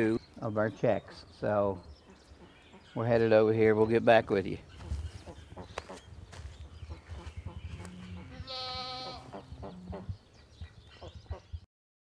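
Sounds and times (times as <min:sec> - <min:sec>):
footsteps on dry leaves: 0:04.7 - 0:09.1
farm animal call: 0:06.9 - 0:10.1.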